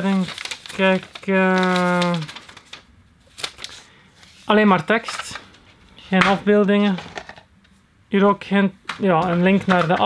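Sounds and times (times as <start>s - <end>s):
paper leaflet rustling: 0.0s - 7.4s, 8.9s - 10.0s.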